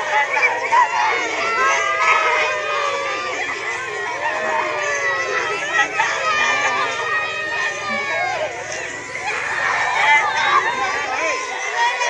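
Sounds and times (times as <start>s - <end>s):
girls crying and wailing: 0.0s - 12.0s.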